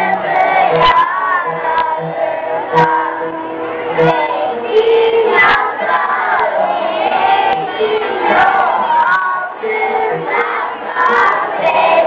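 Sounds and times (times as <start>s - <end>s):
backing music: 0.0s - 12.0s
children singing together: 0.0s - 12.0s.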